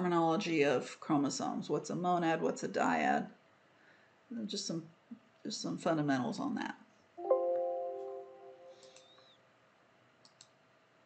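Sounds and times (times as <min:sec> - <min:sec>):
computer mouse clicks: 0:10.2 - 0:10.6.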